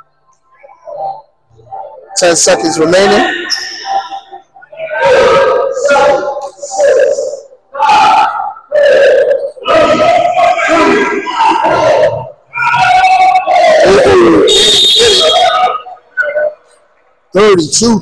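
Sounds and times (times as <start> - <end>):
people shouting in gymnasium: 0.5 - 16.8
high shrill tone: 12.6 - 16.0.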